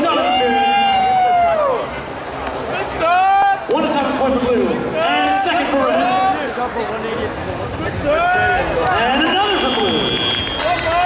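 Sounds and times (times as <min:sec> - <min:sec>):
man shouting over loudspeaker: 0:00.0 - 0:01.8, 0:02.8 - 0:06.5, 0:08.1 - 0:11.0
crowd noise: 0:00.0 - 0:11.0.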